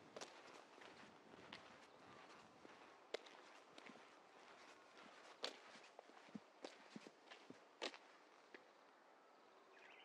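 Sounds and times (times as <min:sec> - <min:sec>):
footsteps on pavement: 0:00.0 - 0:08.8.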